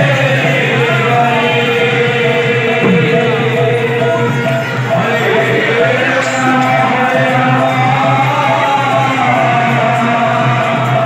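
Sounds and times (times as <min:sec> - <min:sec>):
steady held notes: 0:00.6 - 0:08.4
barrel drums struck by hand: 0:02.7 - 0:04.5.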